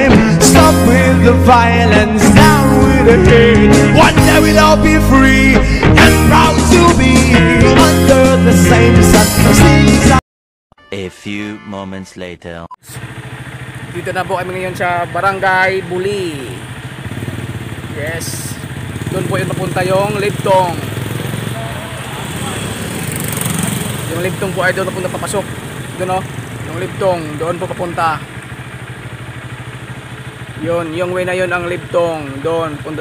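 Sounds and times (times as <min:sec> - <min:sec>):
motorcycle engine idling: 0:12.8 - 0:33.0
voices talking: 0:13.8 - 0:16.8, 0:17.8 - 0:29.6, 0:30.4 - 0:33.0.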